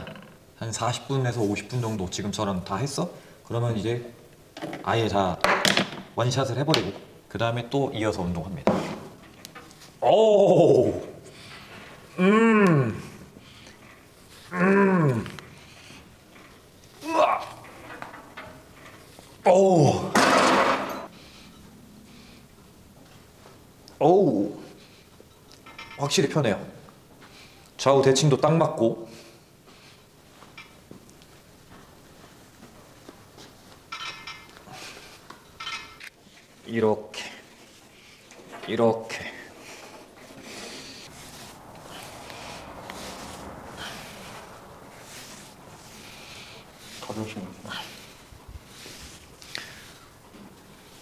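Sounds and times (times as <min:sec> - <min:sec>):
man breathing hard: 0:41.8 - 0:50.2.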